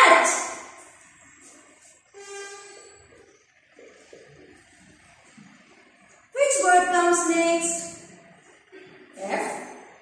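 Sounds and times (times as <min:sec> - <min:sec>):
whiteboard marker squeaking: 0:02.2 - 0:03.3.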